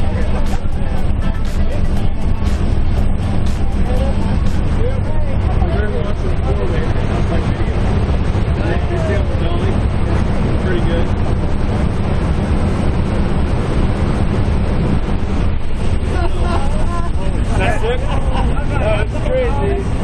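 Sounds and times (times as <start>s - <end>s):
airplane engine drone: 0.0s - 20.0s
muffled voices: 0.0s - 20.0s.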